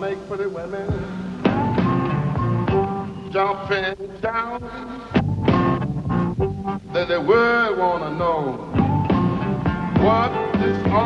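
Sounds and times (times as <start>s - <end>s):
electric blues band playing: 0.0s - 11.0s.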